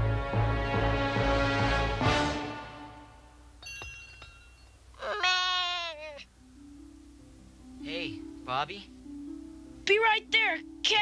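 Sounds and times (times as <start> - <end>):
twinkling sparkle effect: 3.6 - 4.9
cartoon unicorn bleating cry: 5.0 - 6.3.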